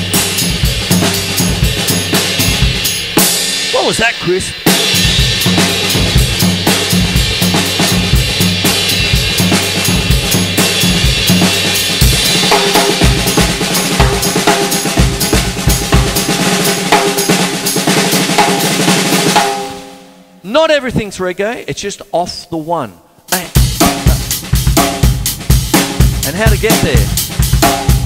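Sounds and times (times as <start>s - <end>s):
acoustic drum kit groove: 0.0s - 21.0s, 23.2s - 28.0s.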